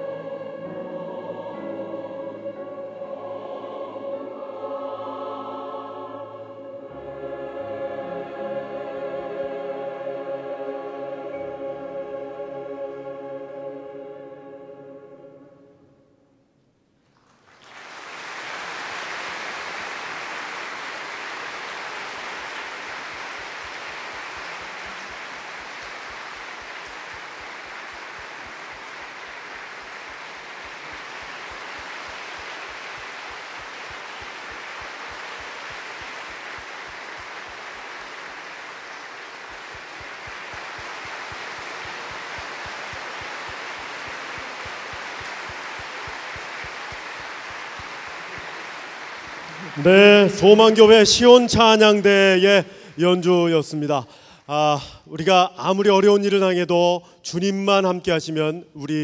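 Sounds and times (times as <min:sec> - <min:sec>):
audience applauding: 0:17.2 - 0:54.3.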